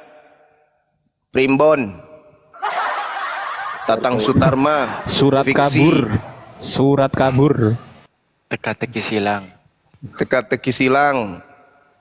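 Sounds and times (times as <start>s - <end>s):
person laughing under their breath: 3.6s - 5.3s.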